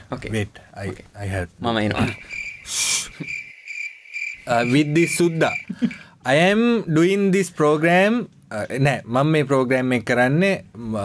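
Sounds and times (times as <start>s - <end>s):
cricket chirping: 2.0s - 6.1s
short shh hiss: 2.6s - 3.2s.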